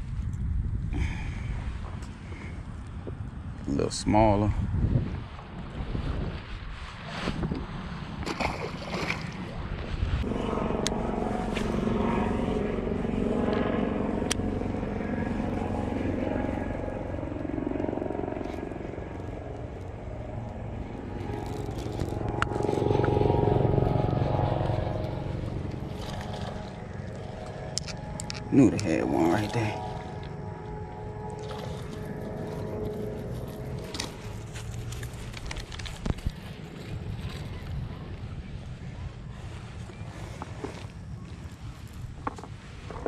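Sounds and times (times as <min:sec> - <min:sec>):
motor engine droning: 0:08.2 - 0:43.0.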